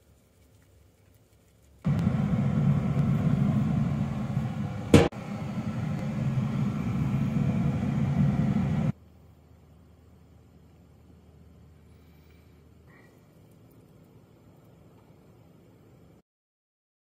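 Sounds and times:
pellet grill low rumble: 1.9 - 9.0
sharp knock: 4.9 - 5.2.

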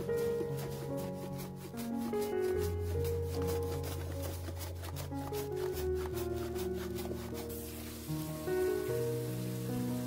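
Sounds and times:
ginger scraping on mandoline slicer: 0.0 - 7.8
background music: 0.0 - 10.0.

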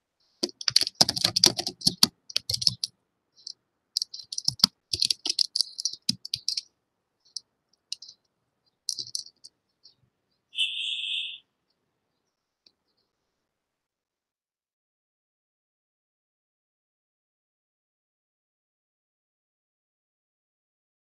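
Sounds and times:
computer keyboard typing: 0.4 - 2.9, 4.0 - 6.7, 8.9 - 9.5
short electronic beep: 10.6 - 11.4.

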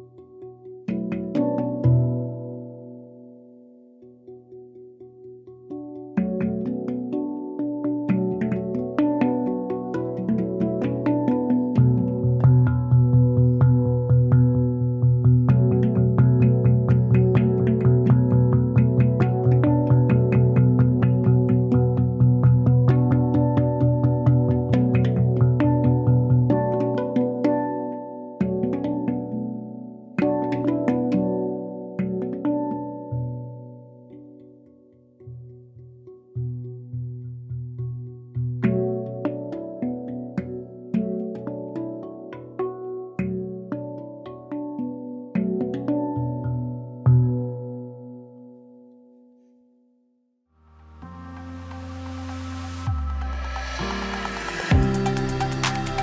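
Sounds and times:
handpan ringing notes: 0.0 - 49.4, 50.8 - 56.0
deep bass handpan note: 9.9 - 27.0, 50.7 - 56.0.

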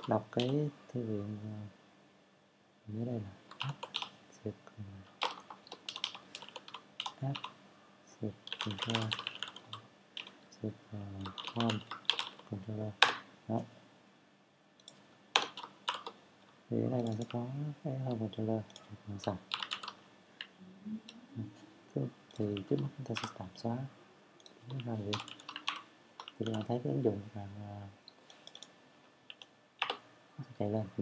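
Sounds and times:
keyboard typing: 0.0 - 0.6, 3.5 - 4.2, 5.1 - 7.6, 8.4 - 10.4, 11.2 - 13.3, 14.8 - 16.2, 16.9 - 17.5, 18.1 - 20.5, 22.3 - 23.4, 24.4 - 26.8, 28.1 - 28.7, 29.3 - 30.0
low voice speaking: 0.0 - 1.7, 2.9 - 3.8, 4.4 - 5.1, 8.1 - 9.2, 10.6 - 11.8, 12.5 - 13.7, 16.7 - 19.4, 24.7 - 25.2, 26.4 - 28.0, 30.4 - 31.0.

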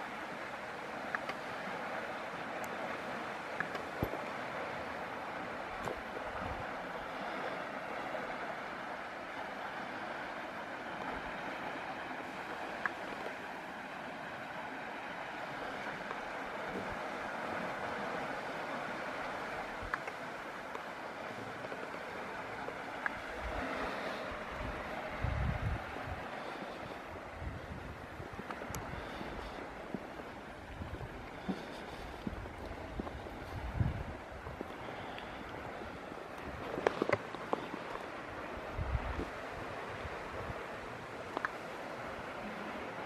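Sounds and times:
river rushing: 0.0 - 43.0
faint ticks: 1.0 - 1.5, 2.6 - 2.8, 3.5 - 4.2, 12.4 - 13.4, 19.8 - 22.1, 23.0 - 23.2, 28.3 - 30.3, 34.5 - 38.1, 41.2 - 41.7.

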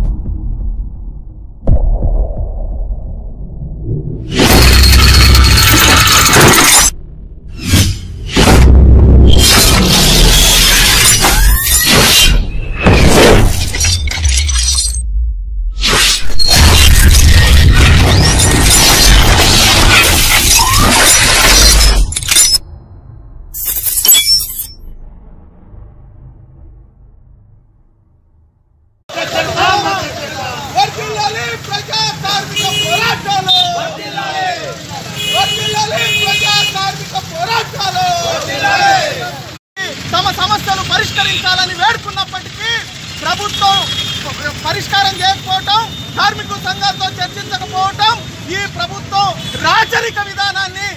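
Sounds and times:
deep impact hit with rumble: 0.0 - 4.6, 7.0 - 9.3
loud bassy crash: 0.0 - 10.3, 24.9 - 29.0
glass shattering and tinkling: 4.4 - 7.0, 13.5 - 15.0, 20.0 - 22.7, 23.6 - 24.9.

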